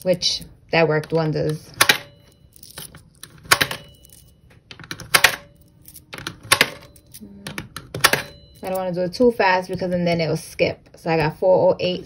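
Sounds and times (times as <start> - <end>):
coins clicking into jar: 1.8 - 8.9.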